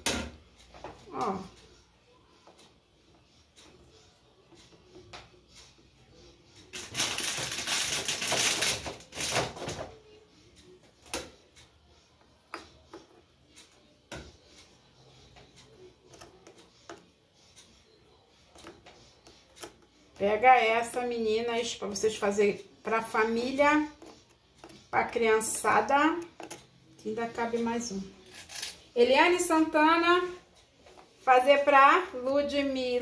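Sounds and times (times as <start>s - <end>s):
biscuit packaging rustling: 6.7s - 9.6s.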